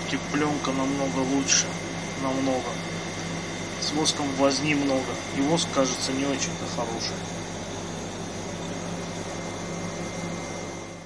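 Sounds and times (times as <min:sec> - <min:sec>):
machine motor hum with whine: 0:00.0 - 0:11.0.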